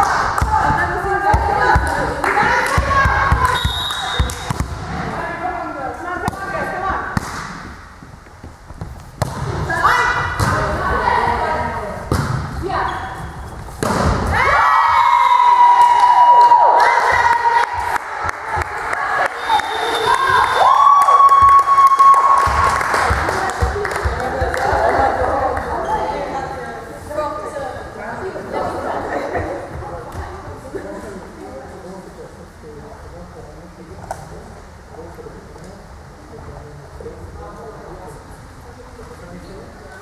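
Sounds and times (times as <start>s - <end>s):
volleyball being struck: 7.1s - 7.8s, 10.3s - 10.7s, 12.1s - 12.6s, 13.8s - 14.4s.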